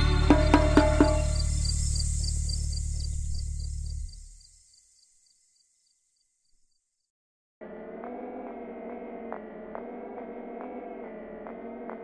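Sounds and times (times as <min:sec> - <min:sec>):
high cricket-like chirp: 0:00.0 - 0:07.1
low drone: 0:07.6 - 0:12.0.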